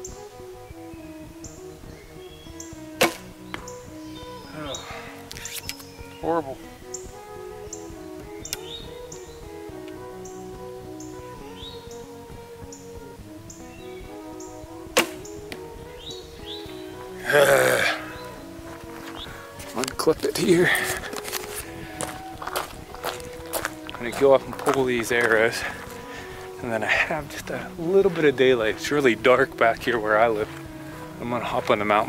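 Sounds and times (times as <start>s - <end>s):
background music with beat: 0.0s - 32.0s
bow shooting an arrow: 3.0s - 3.7s, 5.3s - 5.9s, 14.9s - 15.6s
loud voice burst: 17.2s - 18.1s.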